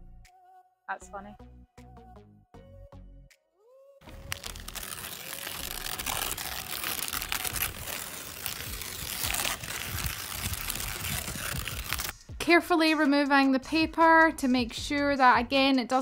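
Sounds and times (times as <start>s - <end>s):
masking paper crinkling and peeling: 4.1s - 12.1s.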